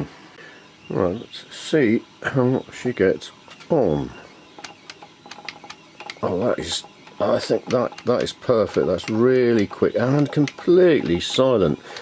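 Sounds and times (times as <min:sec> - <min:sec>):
faint solenoid clicks: 0:04.6 - 0:12.0.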